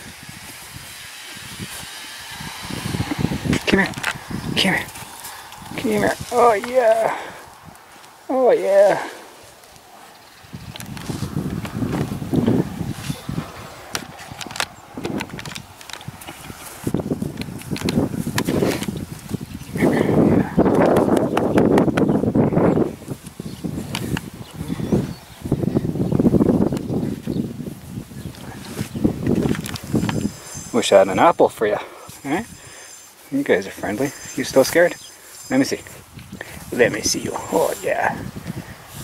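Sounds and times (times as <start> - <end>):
horses rubbing against microphone: 0.0 - 8.2, 9.2 - 39.0.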